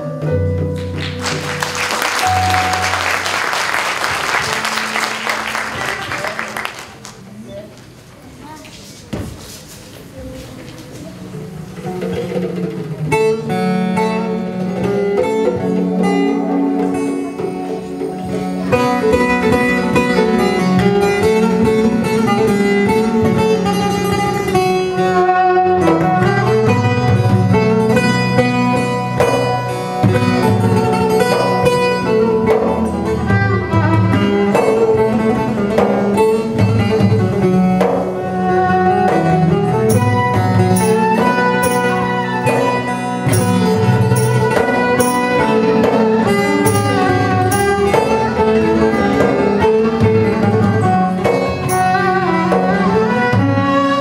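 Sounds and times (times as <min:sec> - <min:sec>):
plucked lute: 0:00.0 - 0:06.0, 0:11.1 - 0:54.0
violin: 0:00.0 - 0:06.6, 0:11.0 - 0:54.0
hand percussion: 0:00.6 - 0:06.7, 0:25.8 - 0:54.0.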